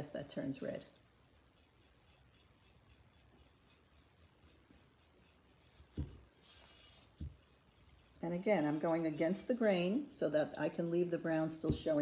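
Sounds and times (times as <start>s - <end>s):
paintbrush scratchy strokes: 1.2s - 9.2s
soft knock: 5.9s - 6.2s.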